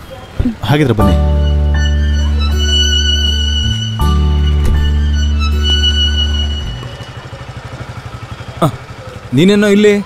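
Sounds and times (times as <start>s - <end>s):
film score strings: 0.6s - 8.3s
scooter engine idling: 1.9s - 10.0s.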